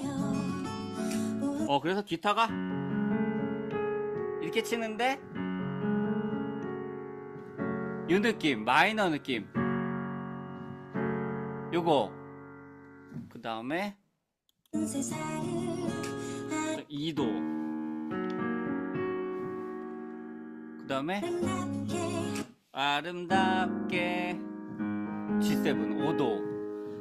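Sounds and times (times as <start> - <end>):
digital piano chords: 0.0 - 13.8, 14.8 - 27.0.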